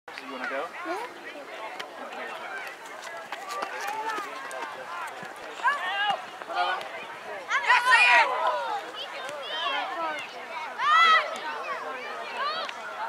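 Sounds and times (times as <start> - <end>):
people shouting outdoors: 4.9 - 13.0.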